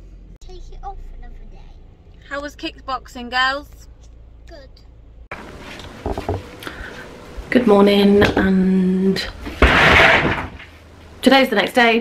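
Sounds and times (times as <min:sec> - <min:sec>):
door scraping open: 0:05.4 - 0:06.7, 0:09.2 - 0:10.8.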